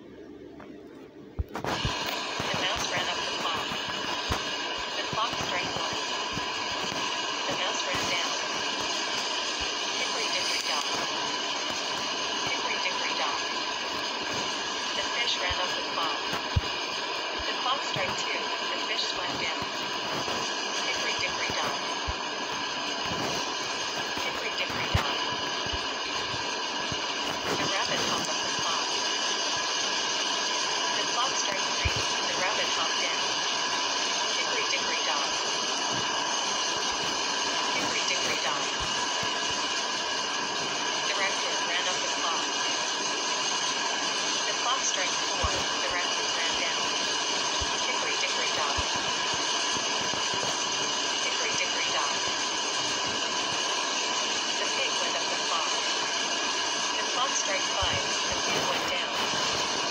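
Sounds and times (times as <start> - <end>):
steady background noise: 0.0 - 59.9.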